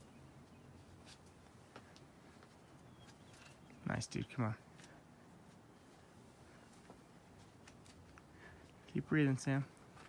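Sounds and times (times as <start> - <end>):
faint outdoor background: 0.0 - 10.0
soft climbing sounds: 0.0 - 10.0.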